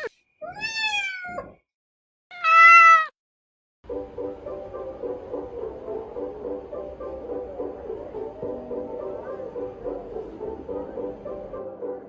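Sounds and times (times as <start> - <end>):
cat meowing: 0.0 - 1.6, 2.3 - 3.2.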